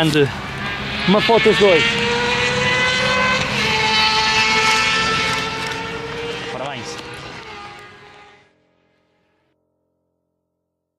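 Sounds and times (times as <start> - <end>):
propeller aircraft engine droning: 0.0 - 9.3.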